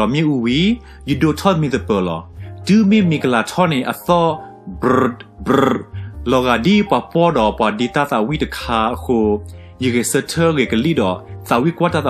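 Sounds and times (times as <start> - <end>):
guitar music: 4.6 - 6.1
drawn-out vocal sounds: 4.7 - 6.2.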